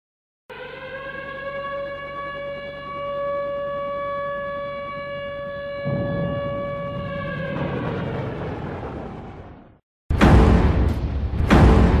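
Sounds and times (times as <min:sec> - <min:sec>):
steady held siren-like tone: 0:00.5 - 0:08.7
low rumbling noise: 0:05.8 - 0:11.6.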